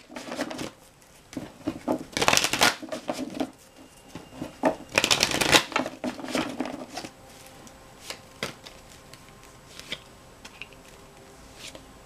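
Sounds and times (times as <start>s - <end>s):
cards being shuffled by hand: 0.0s - 3.7s, 4.4s - 11.9s.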